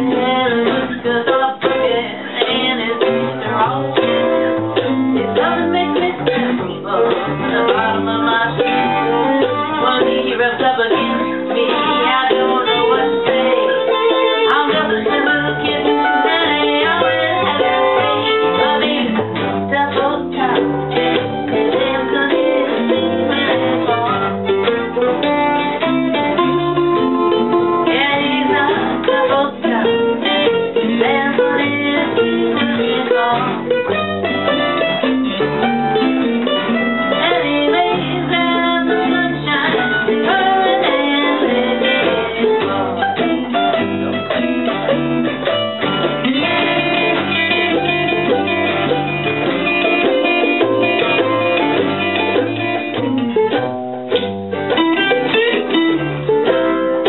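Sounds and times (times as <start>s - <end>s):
string band playing blues: 0.0s - 57.0s.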